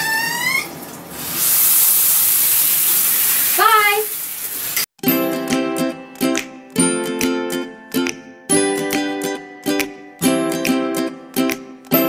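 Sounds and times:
shower spray hissing: 0.3s - 4.9s.

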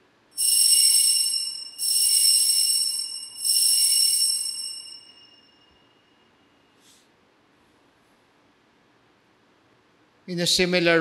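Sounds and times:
altar bell ringing: 0.4s - 6.2s.

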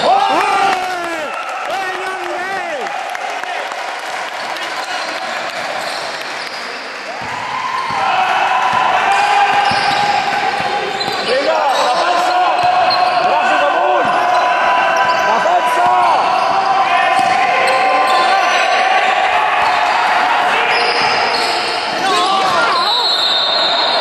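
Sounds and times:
sneakers squeaking: 4.7s - 24.0s.

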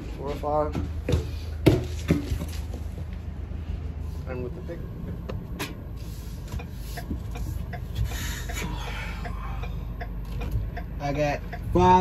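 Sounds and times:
low steady hum: 0.0s - 12.0s
knocks and thumps in truck box: 0.6s - 2.7s.

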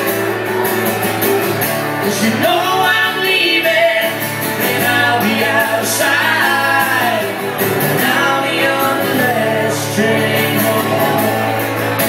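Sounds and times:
acoustic guitar playing: 0.0s - 12.0s
person singing: 2.0s - 12.0s.

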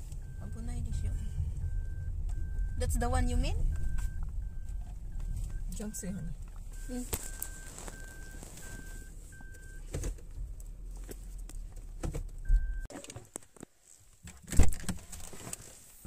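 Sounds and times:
car warning beep: 0.0s - 10.1s, 12.4s - 12.9s
car engine rumble: 0.0s - 16.0s.

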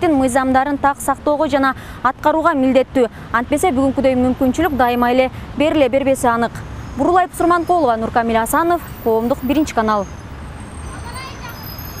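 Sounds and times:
low traffic rumble: 0.0s - 12.0s
faint voices of passers-by: 6.4s - 12.0s.

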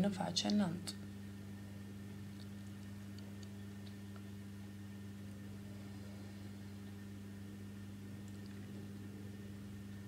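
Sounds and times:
faint electrical hum: 0.0s - 10.0s
faint small ticks: 2.3s - 4.3s.

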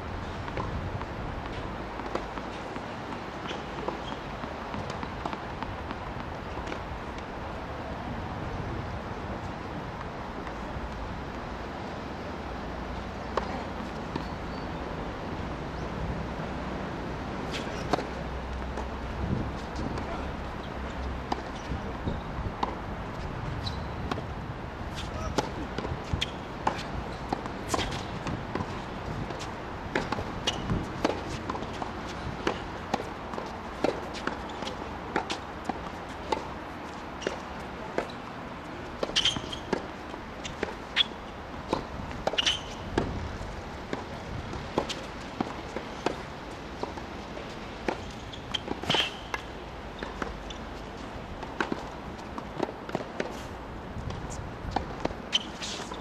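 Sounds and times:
balls bouncing on hard court: 0.4s - 7.2s, 24.9s - 50.7s
tennis balls hit by rackets: 0.4s - 7.6s, 15.8s - 56.0s.

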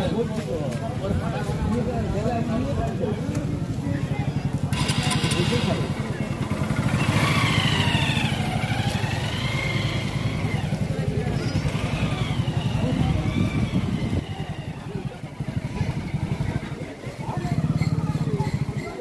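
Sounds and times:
faint voices: 0.0s - 19.0s
motorcycle engine rumbling: 0.0s - 19.0s.

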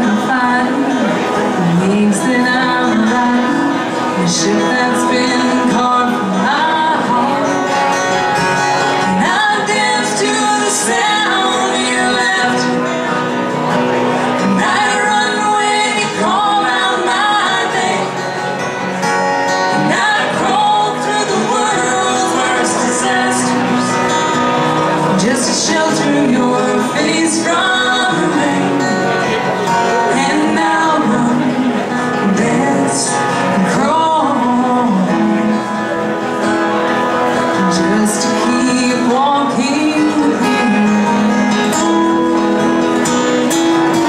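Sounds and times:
acoustic guitars strumming: 0.0s - 44.0s
woman singing into a microphone: 0.0s - 44.0s.

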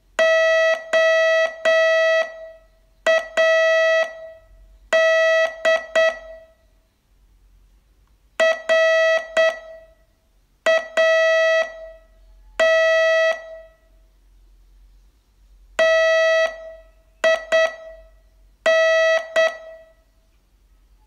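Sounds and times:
morse code beeps: 3.1s - 6.6s, 8.4s - 9.9s, 15.8s - 19.9s.

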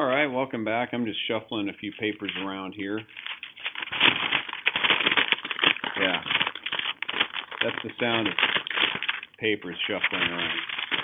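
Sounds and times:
paper rustling: 1.9s - 11.0s.

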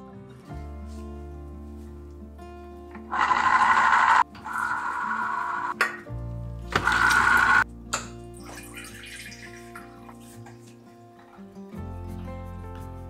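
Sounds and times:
electric citrus juicer whirring: 3.0s - 5.8s, 6.7s - 7.6s
juicer click: 3.0s - 6.0s, 6.7s - 7.6s.

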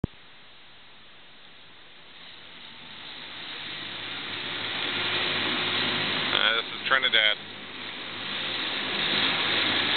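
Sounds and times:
water rushing past boat: 0.0s - 9.9s.

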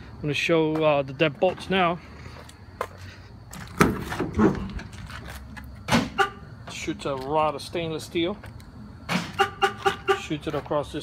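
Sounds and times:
van door clunking: 3.6s - 5.2s.

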